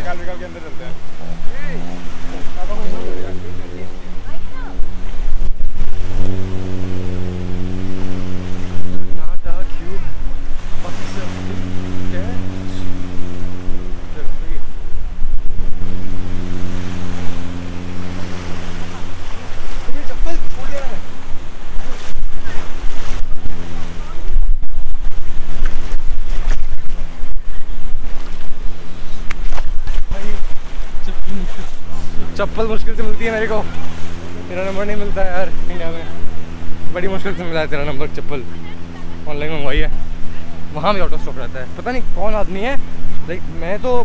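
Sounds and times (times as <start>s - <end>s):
boat engine running: 0.0s - 44.0s
waves washing on shore: 0.0s - 44.0s
wind buffeting microphone: 0.0s - 44.0s.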